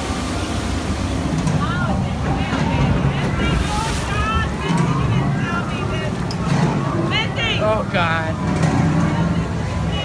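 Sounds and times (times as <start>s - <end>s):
steady low rumble: 0.0s - 10.0s
voices from ride sound effects: 1.5s - 10.0s.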